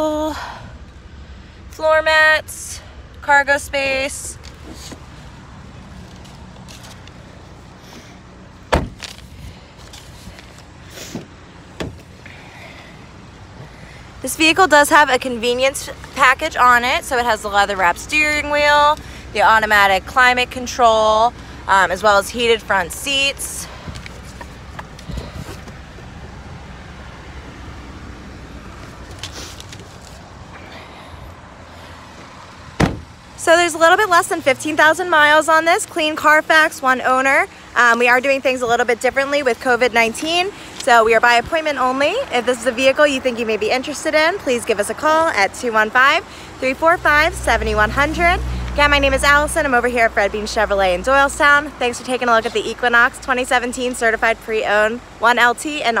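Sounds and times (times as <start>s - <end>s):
car door shutting: 8.6s - 9.3s, 11.0s - 12.1s, 32.2s - 33.2s.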